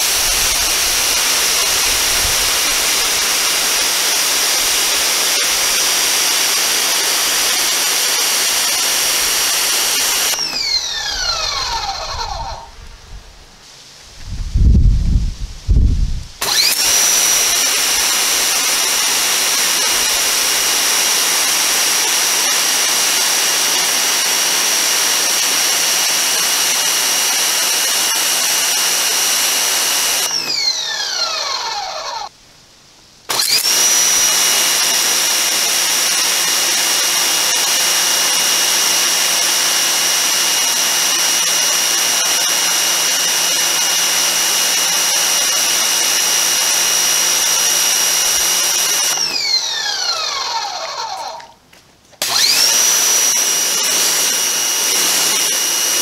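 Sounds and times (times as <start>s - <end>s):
pressure washer motor whining: 0.0s - 12.8s, 16.4s - 32.3s, 33.3s - 51.6s, 52.2s - 56.0s.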